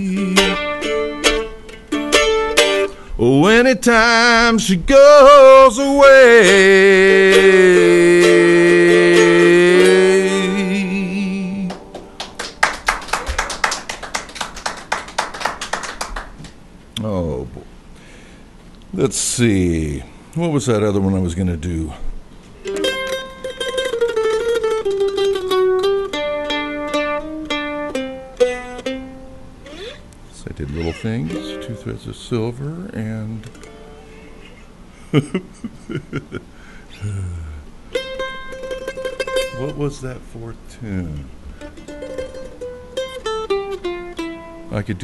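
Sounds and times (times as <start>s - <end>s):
mandolin picking a melody: 0.0s - 3.6s, 5.7s - 12.8s, 22.6s - 34.6s, 37.9s - 45.0s.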